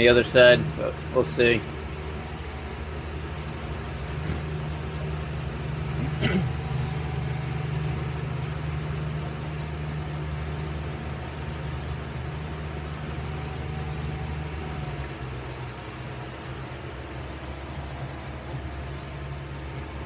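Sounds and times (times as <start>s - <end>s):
boat engine running: 0.0s - 20.0s.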